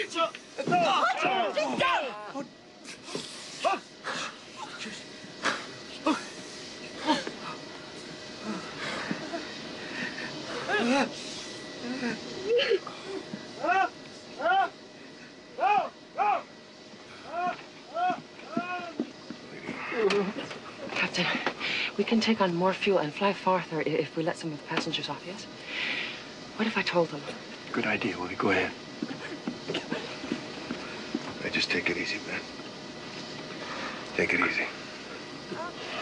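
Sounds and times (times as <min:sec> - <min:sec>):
person wailing sobs: 0:07.0 - 0:07.5, 0:10.6 - 0:11.1, 0:11.8 - 0:14.7, 0:17.2 - 0:19.0.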